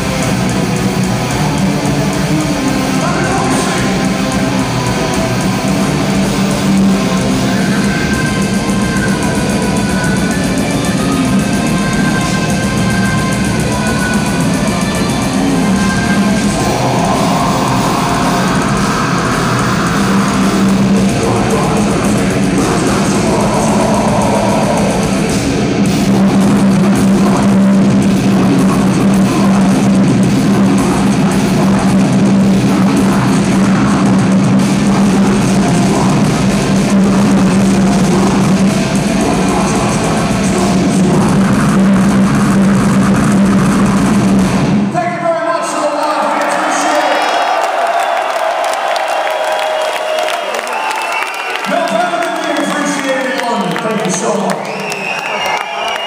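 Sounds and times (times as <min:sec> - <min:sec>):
heavy metal band playing live: 0:00.0 - 0:56.0.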